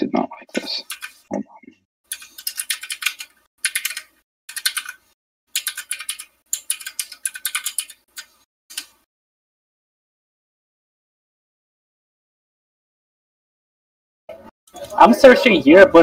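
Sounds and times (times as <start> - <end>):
fast typing on computer keyboard: 0.8 - 1.2, 2.1 - 8.9.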